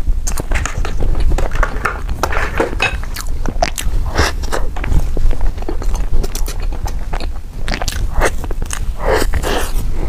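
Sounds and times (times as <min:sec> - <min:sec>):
wet chewing and smacking: 0:00.2 - 0:10.0.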